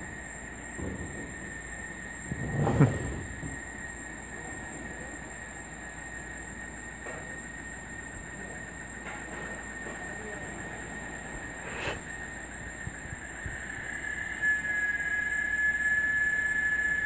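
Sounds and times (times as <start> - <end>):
cicadas high whine: 0.0 - 17.0.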